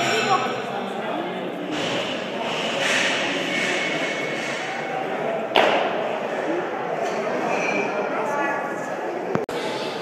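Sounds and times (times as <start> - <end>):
gym hubbub: 0.0 - 10.0.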